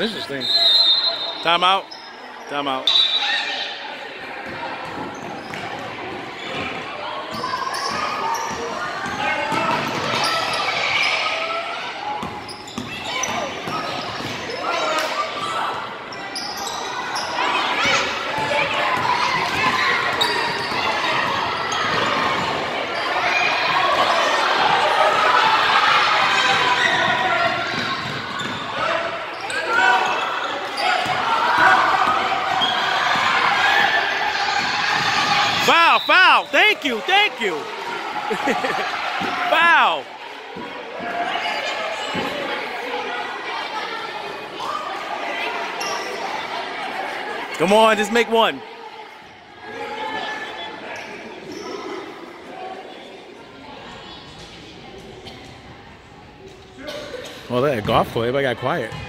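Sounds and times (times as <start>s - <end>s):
chatter and calls of people: 0.0s - 59.0s.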